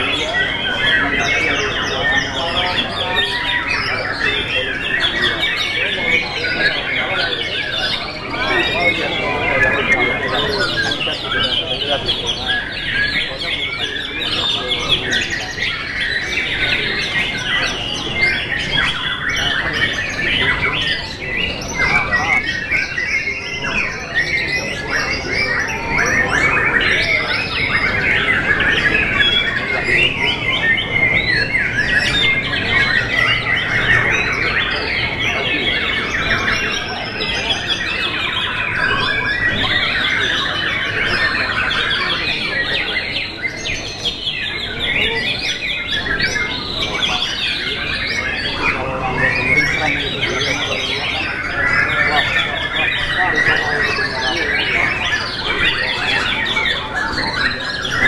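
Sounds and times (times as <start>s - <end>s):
birds singing whistles and trills: 0.0s - 58.0s.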